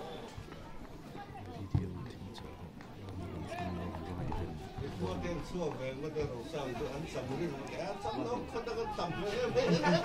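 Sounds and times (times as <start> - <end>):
spectators chatting: 0.0 - 10.0.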